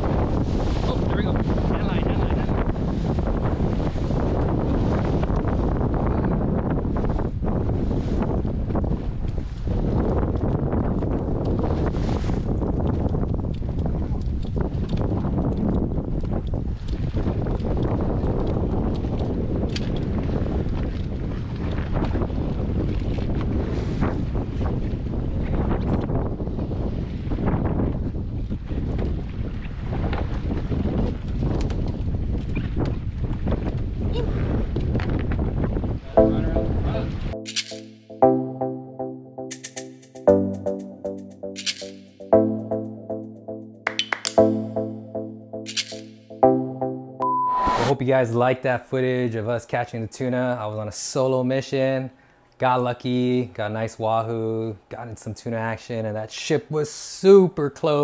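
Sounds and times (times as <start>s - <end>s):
water washing against hull: 0.0s - 36.0s
wind buffeting microphone: 0.0s - 37.4s.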